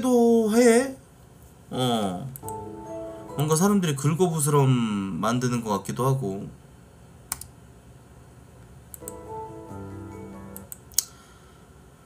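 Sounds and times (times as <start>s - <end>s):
soft music: 2.4s - 5.0s, 9.0s - 11.0s
computer mouse clicks: 7.3s - 7.5s, 8.9s - 9.2s.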